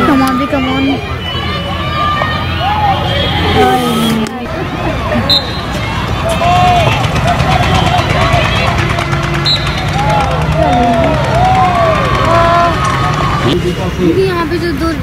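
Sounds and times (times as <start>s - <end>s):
people shouting: 0.0s - 13.6s.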